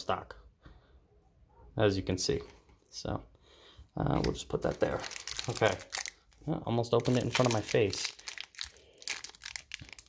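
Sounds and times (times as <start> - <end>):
foil wrapper crinkling: 4.2 - 10.0.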